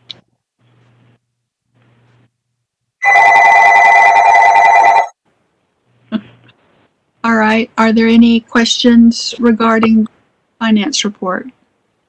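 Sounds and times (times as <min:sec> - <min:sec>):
telephone ringing: 0:03.0 - 0:05.2.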